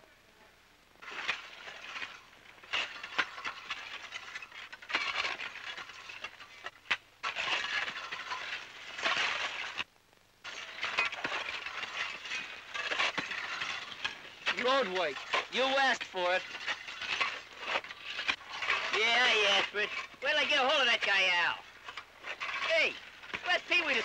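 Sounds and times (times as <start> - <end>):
shovels scraping gravel: 1.0 - 24.0.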